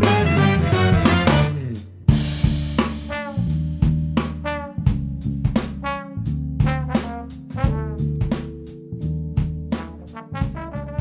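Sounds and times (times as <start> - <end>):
bass: 0.0 - 11.0
drum kit: 0.0 - 11.0
jazz horn section chords: 0.0 - 11.0.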